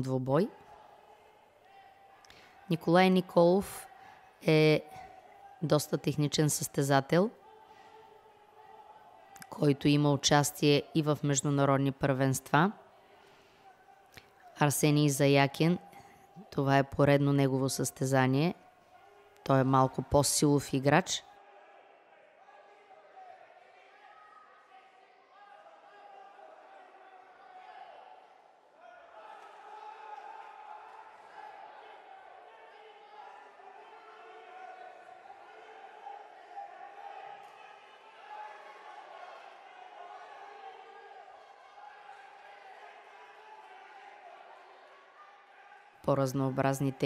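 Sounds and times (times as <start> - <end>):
faint crowd voices echoing: 0.0 - 47.0.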